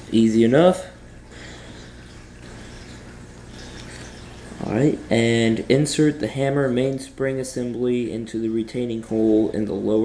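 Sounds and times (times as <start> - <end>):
background hiss with low hum: 0.0 - 10.0.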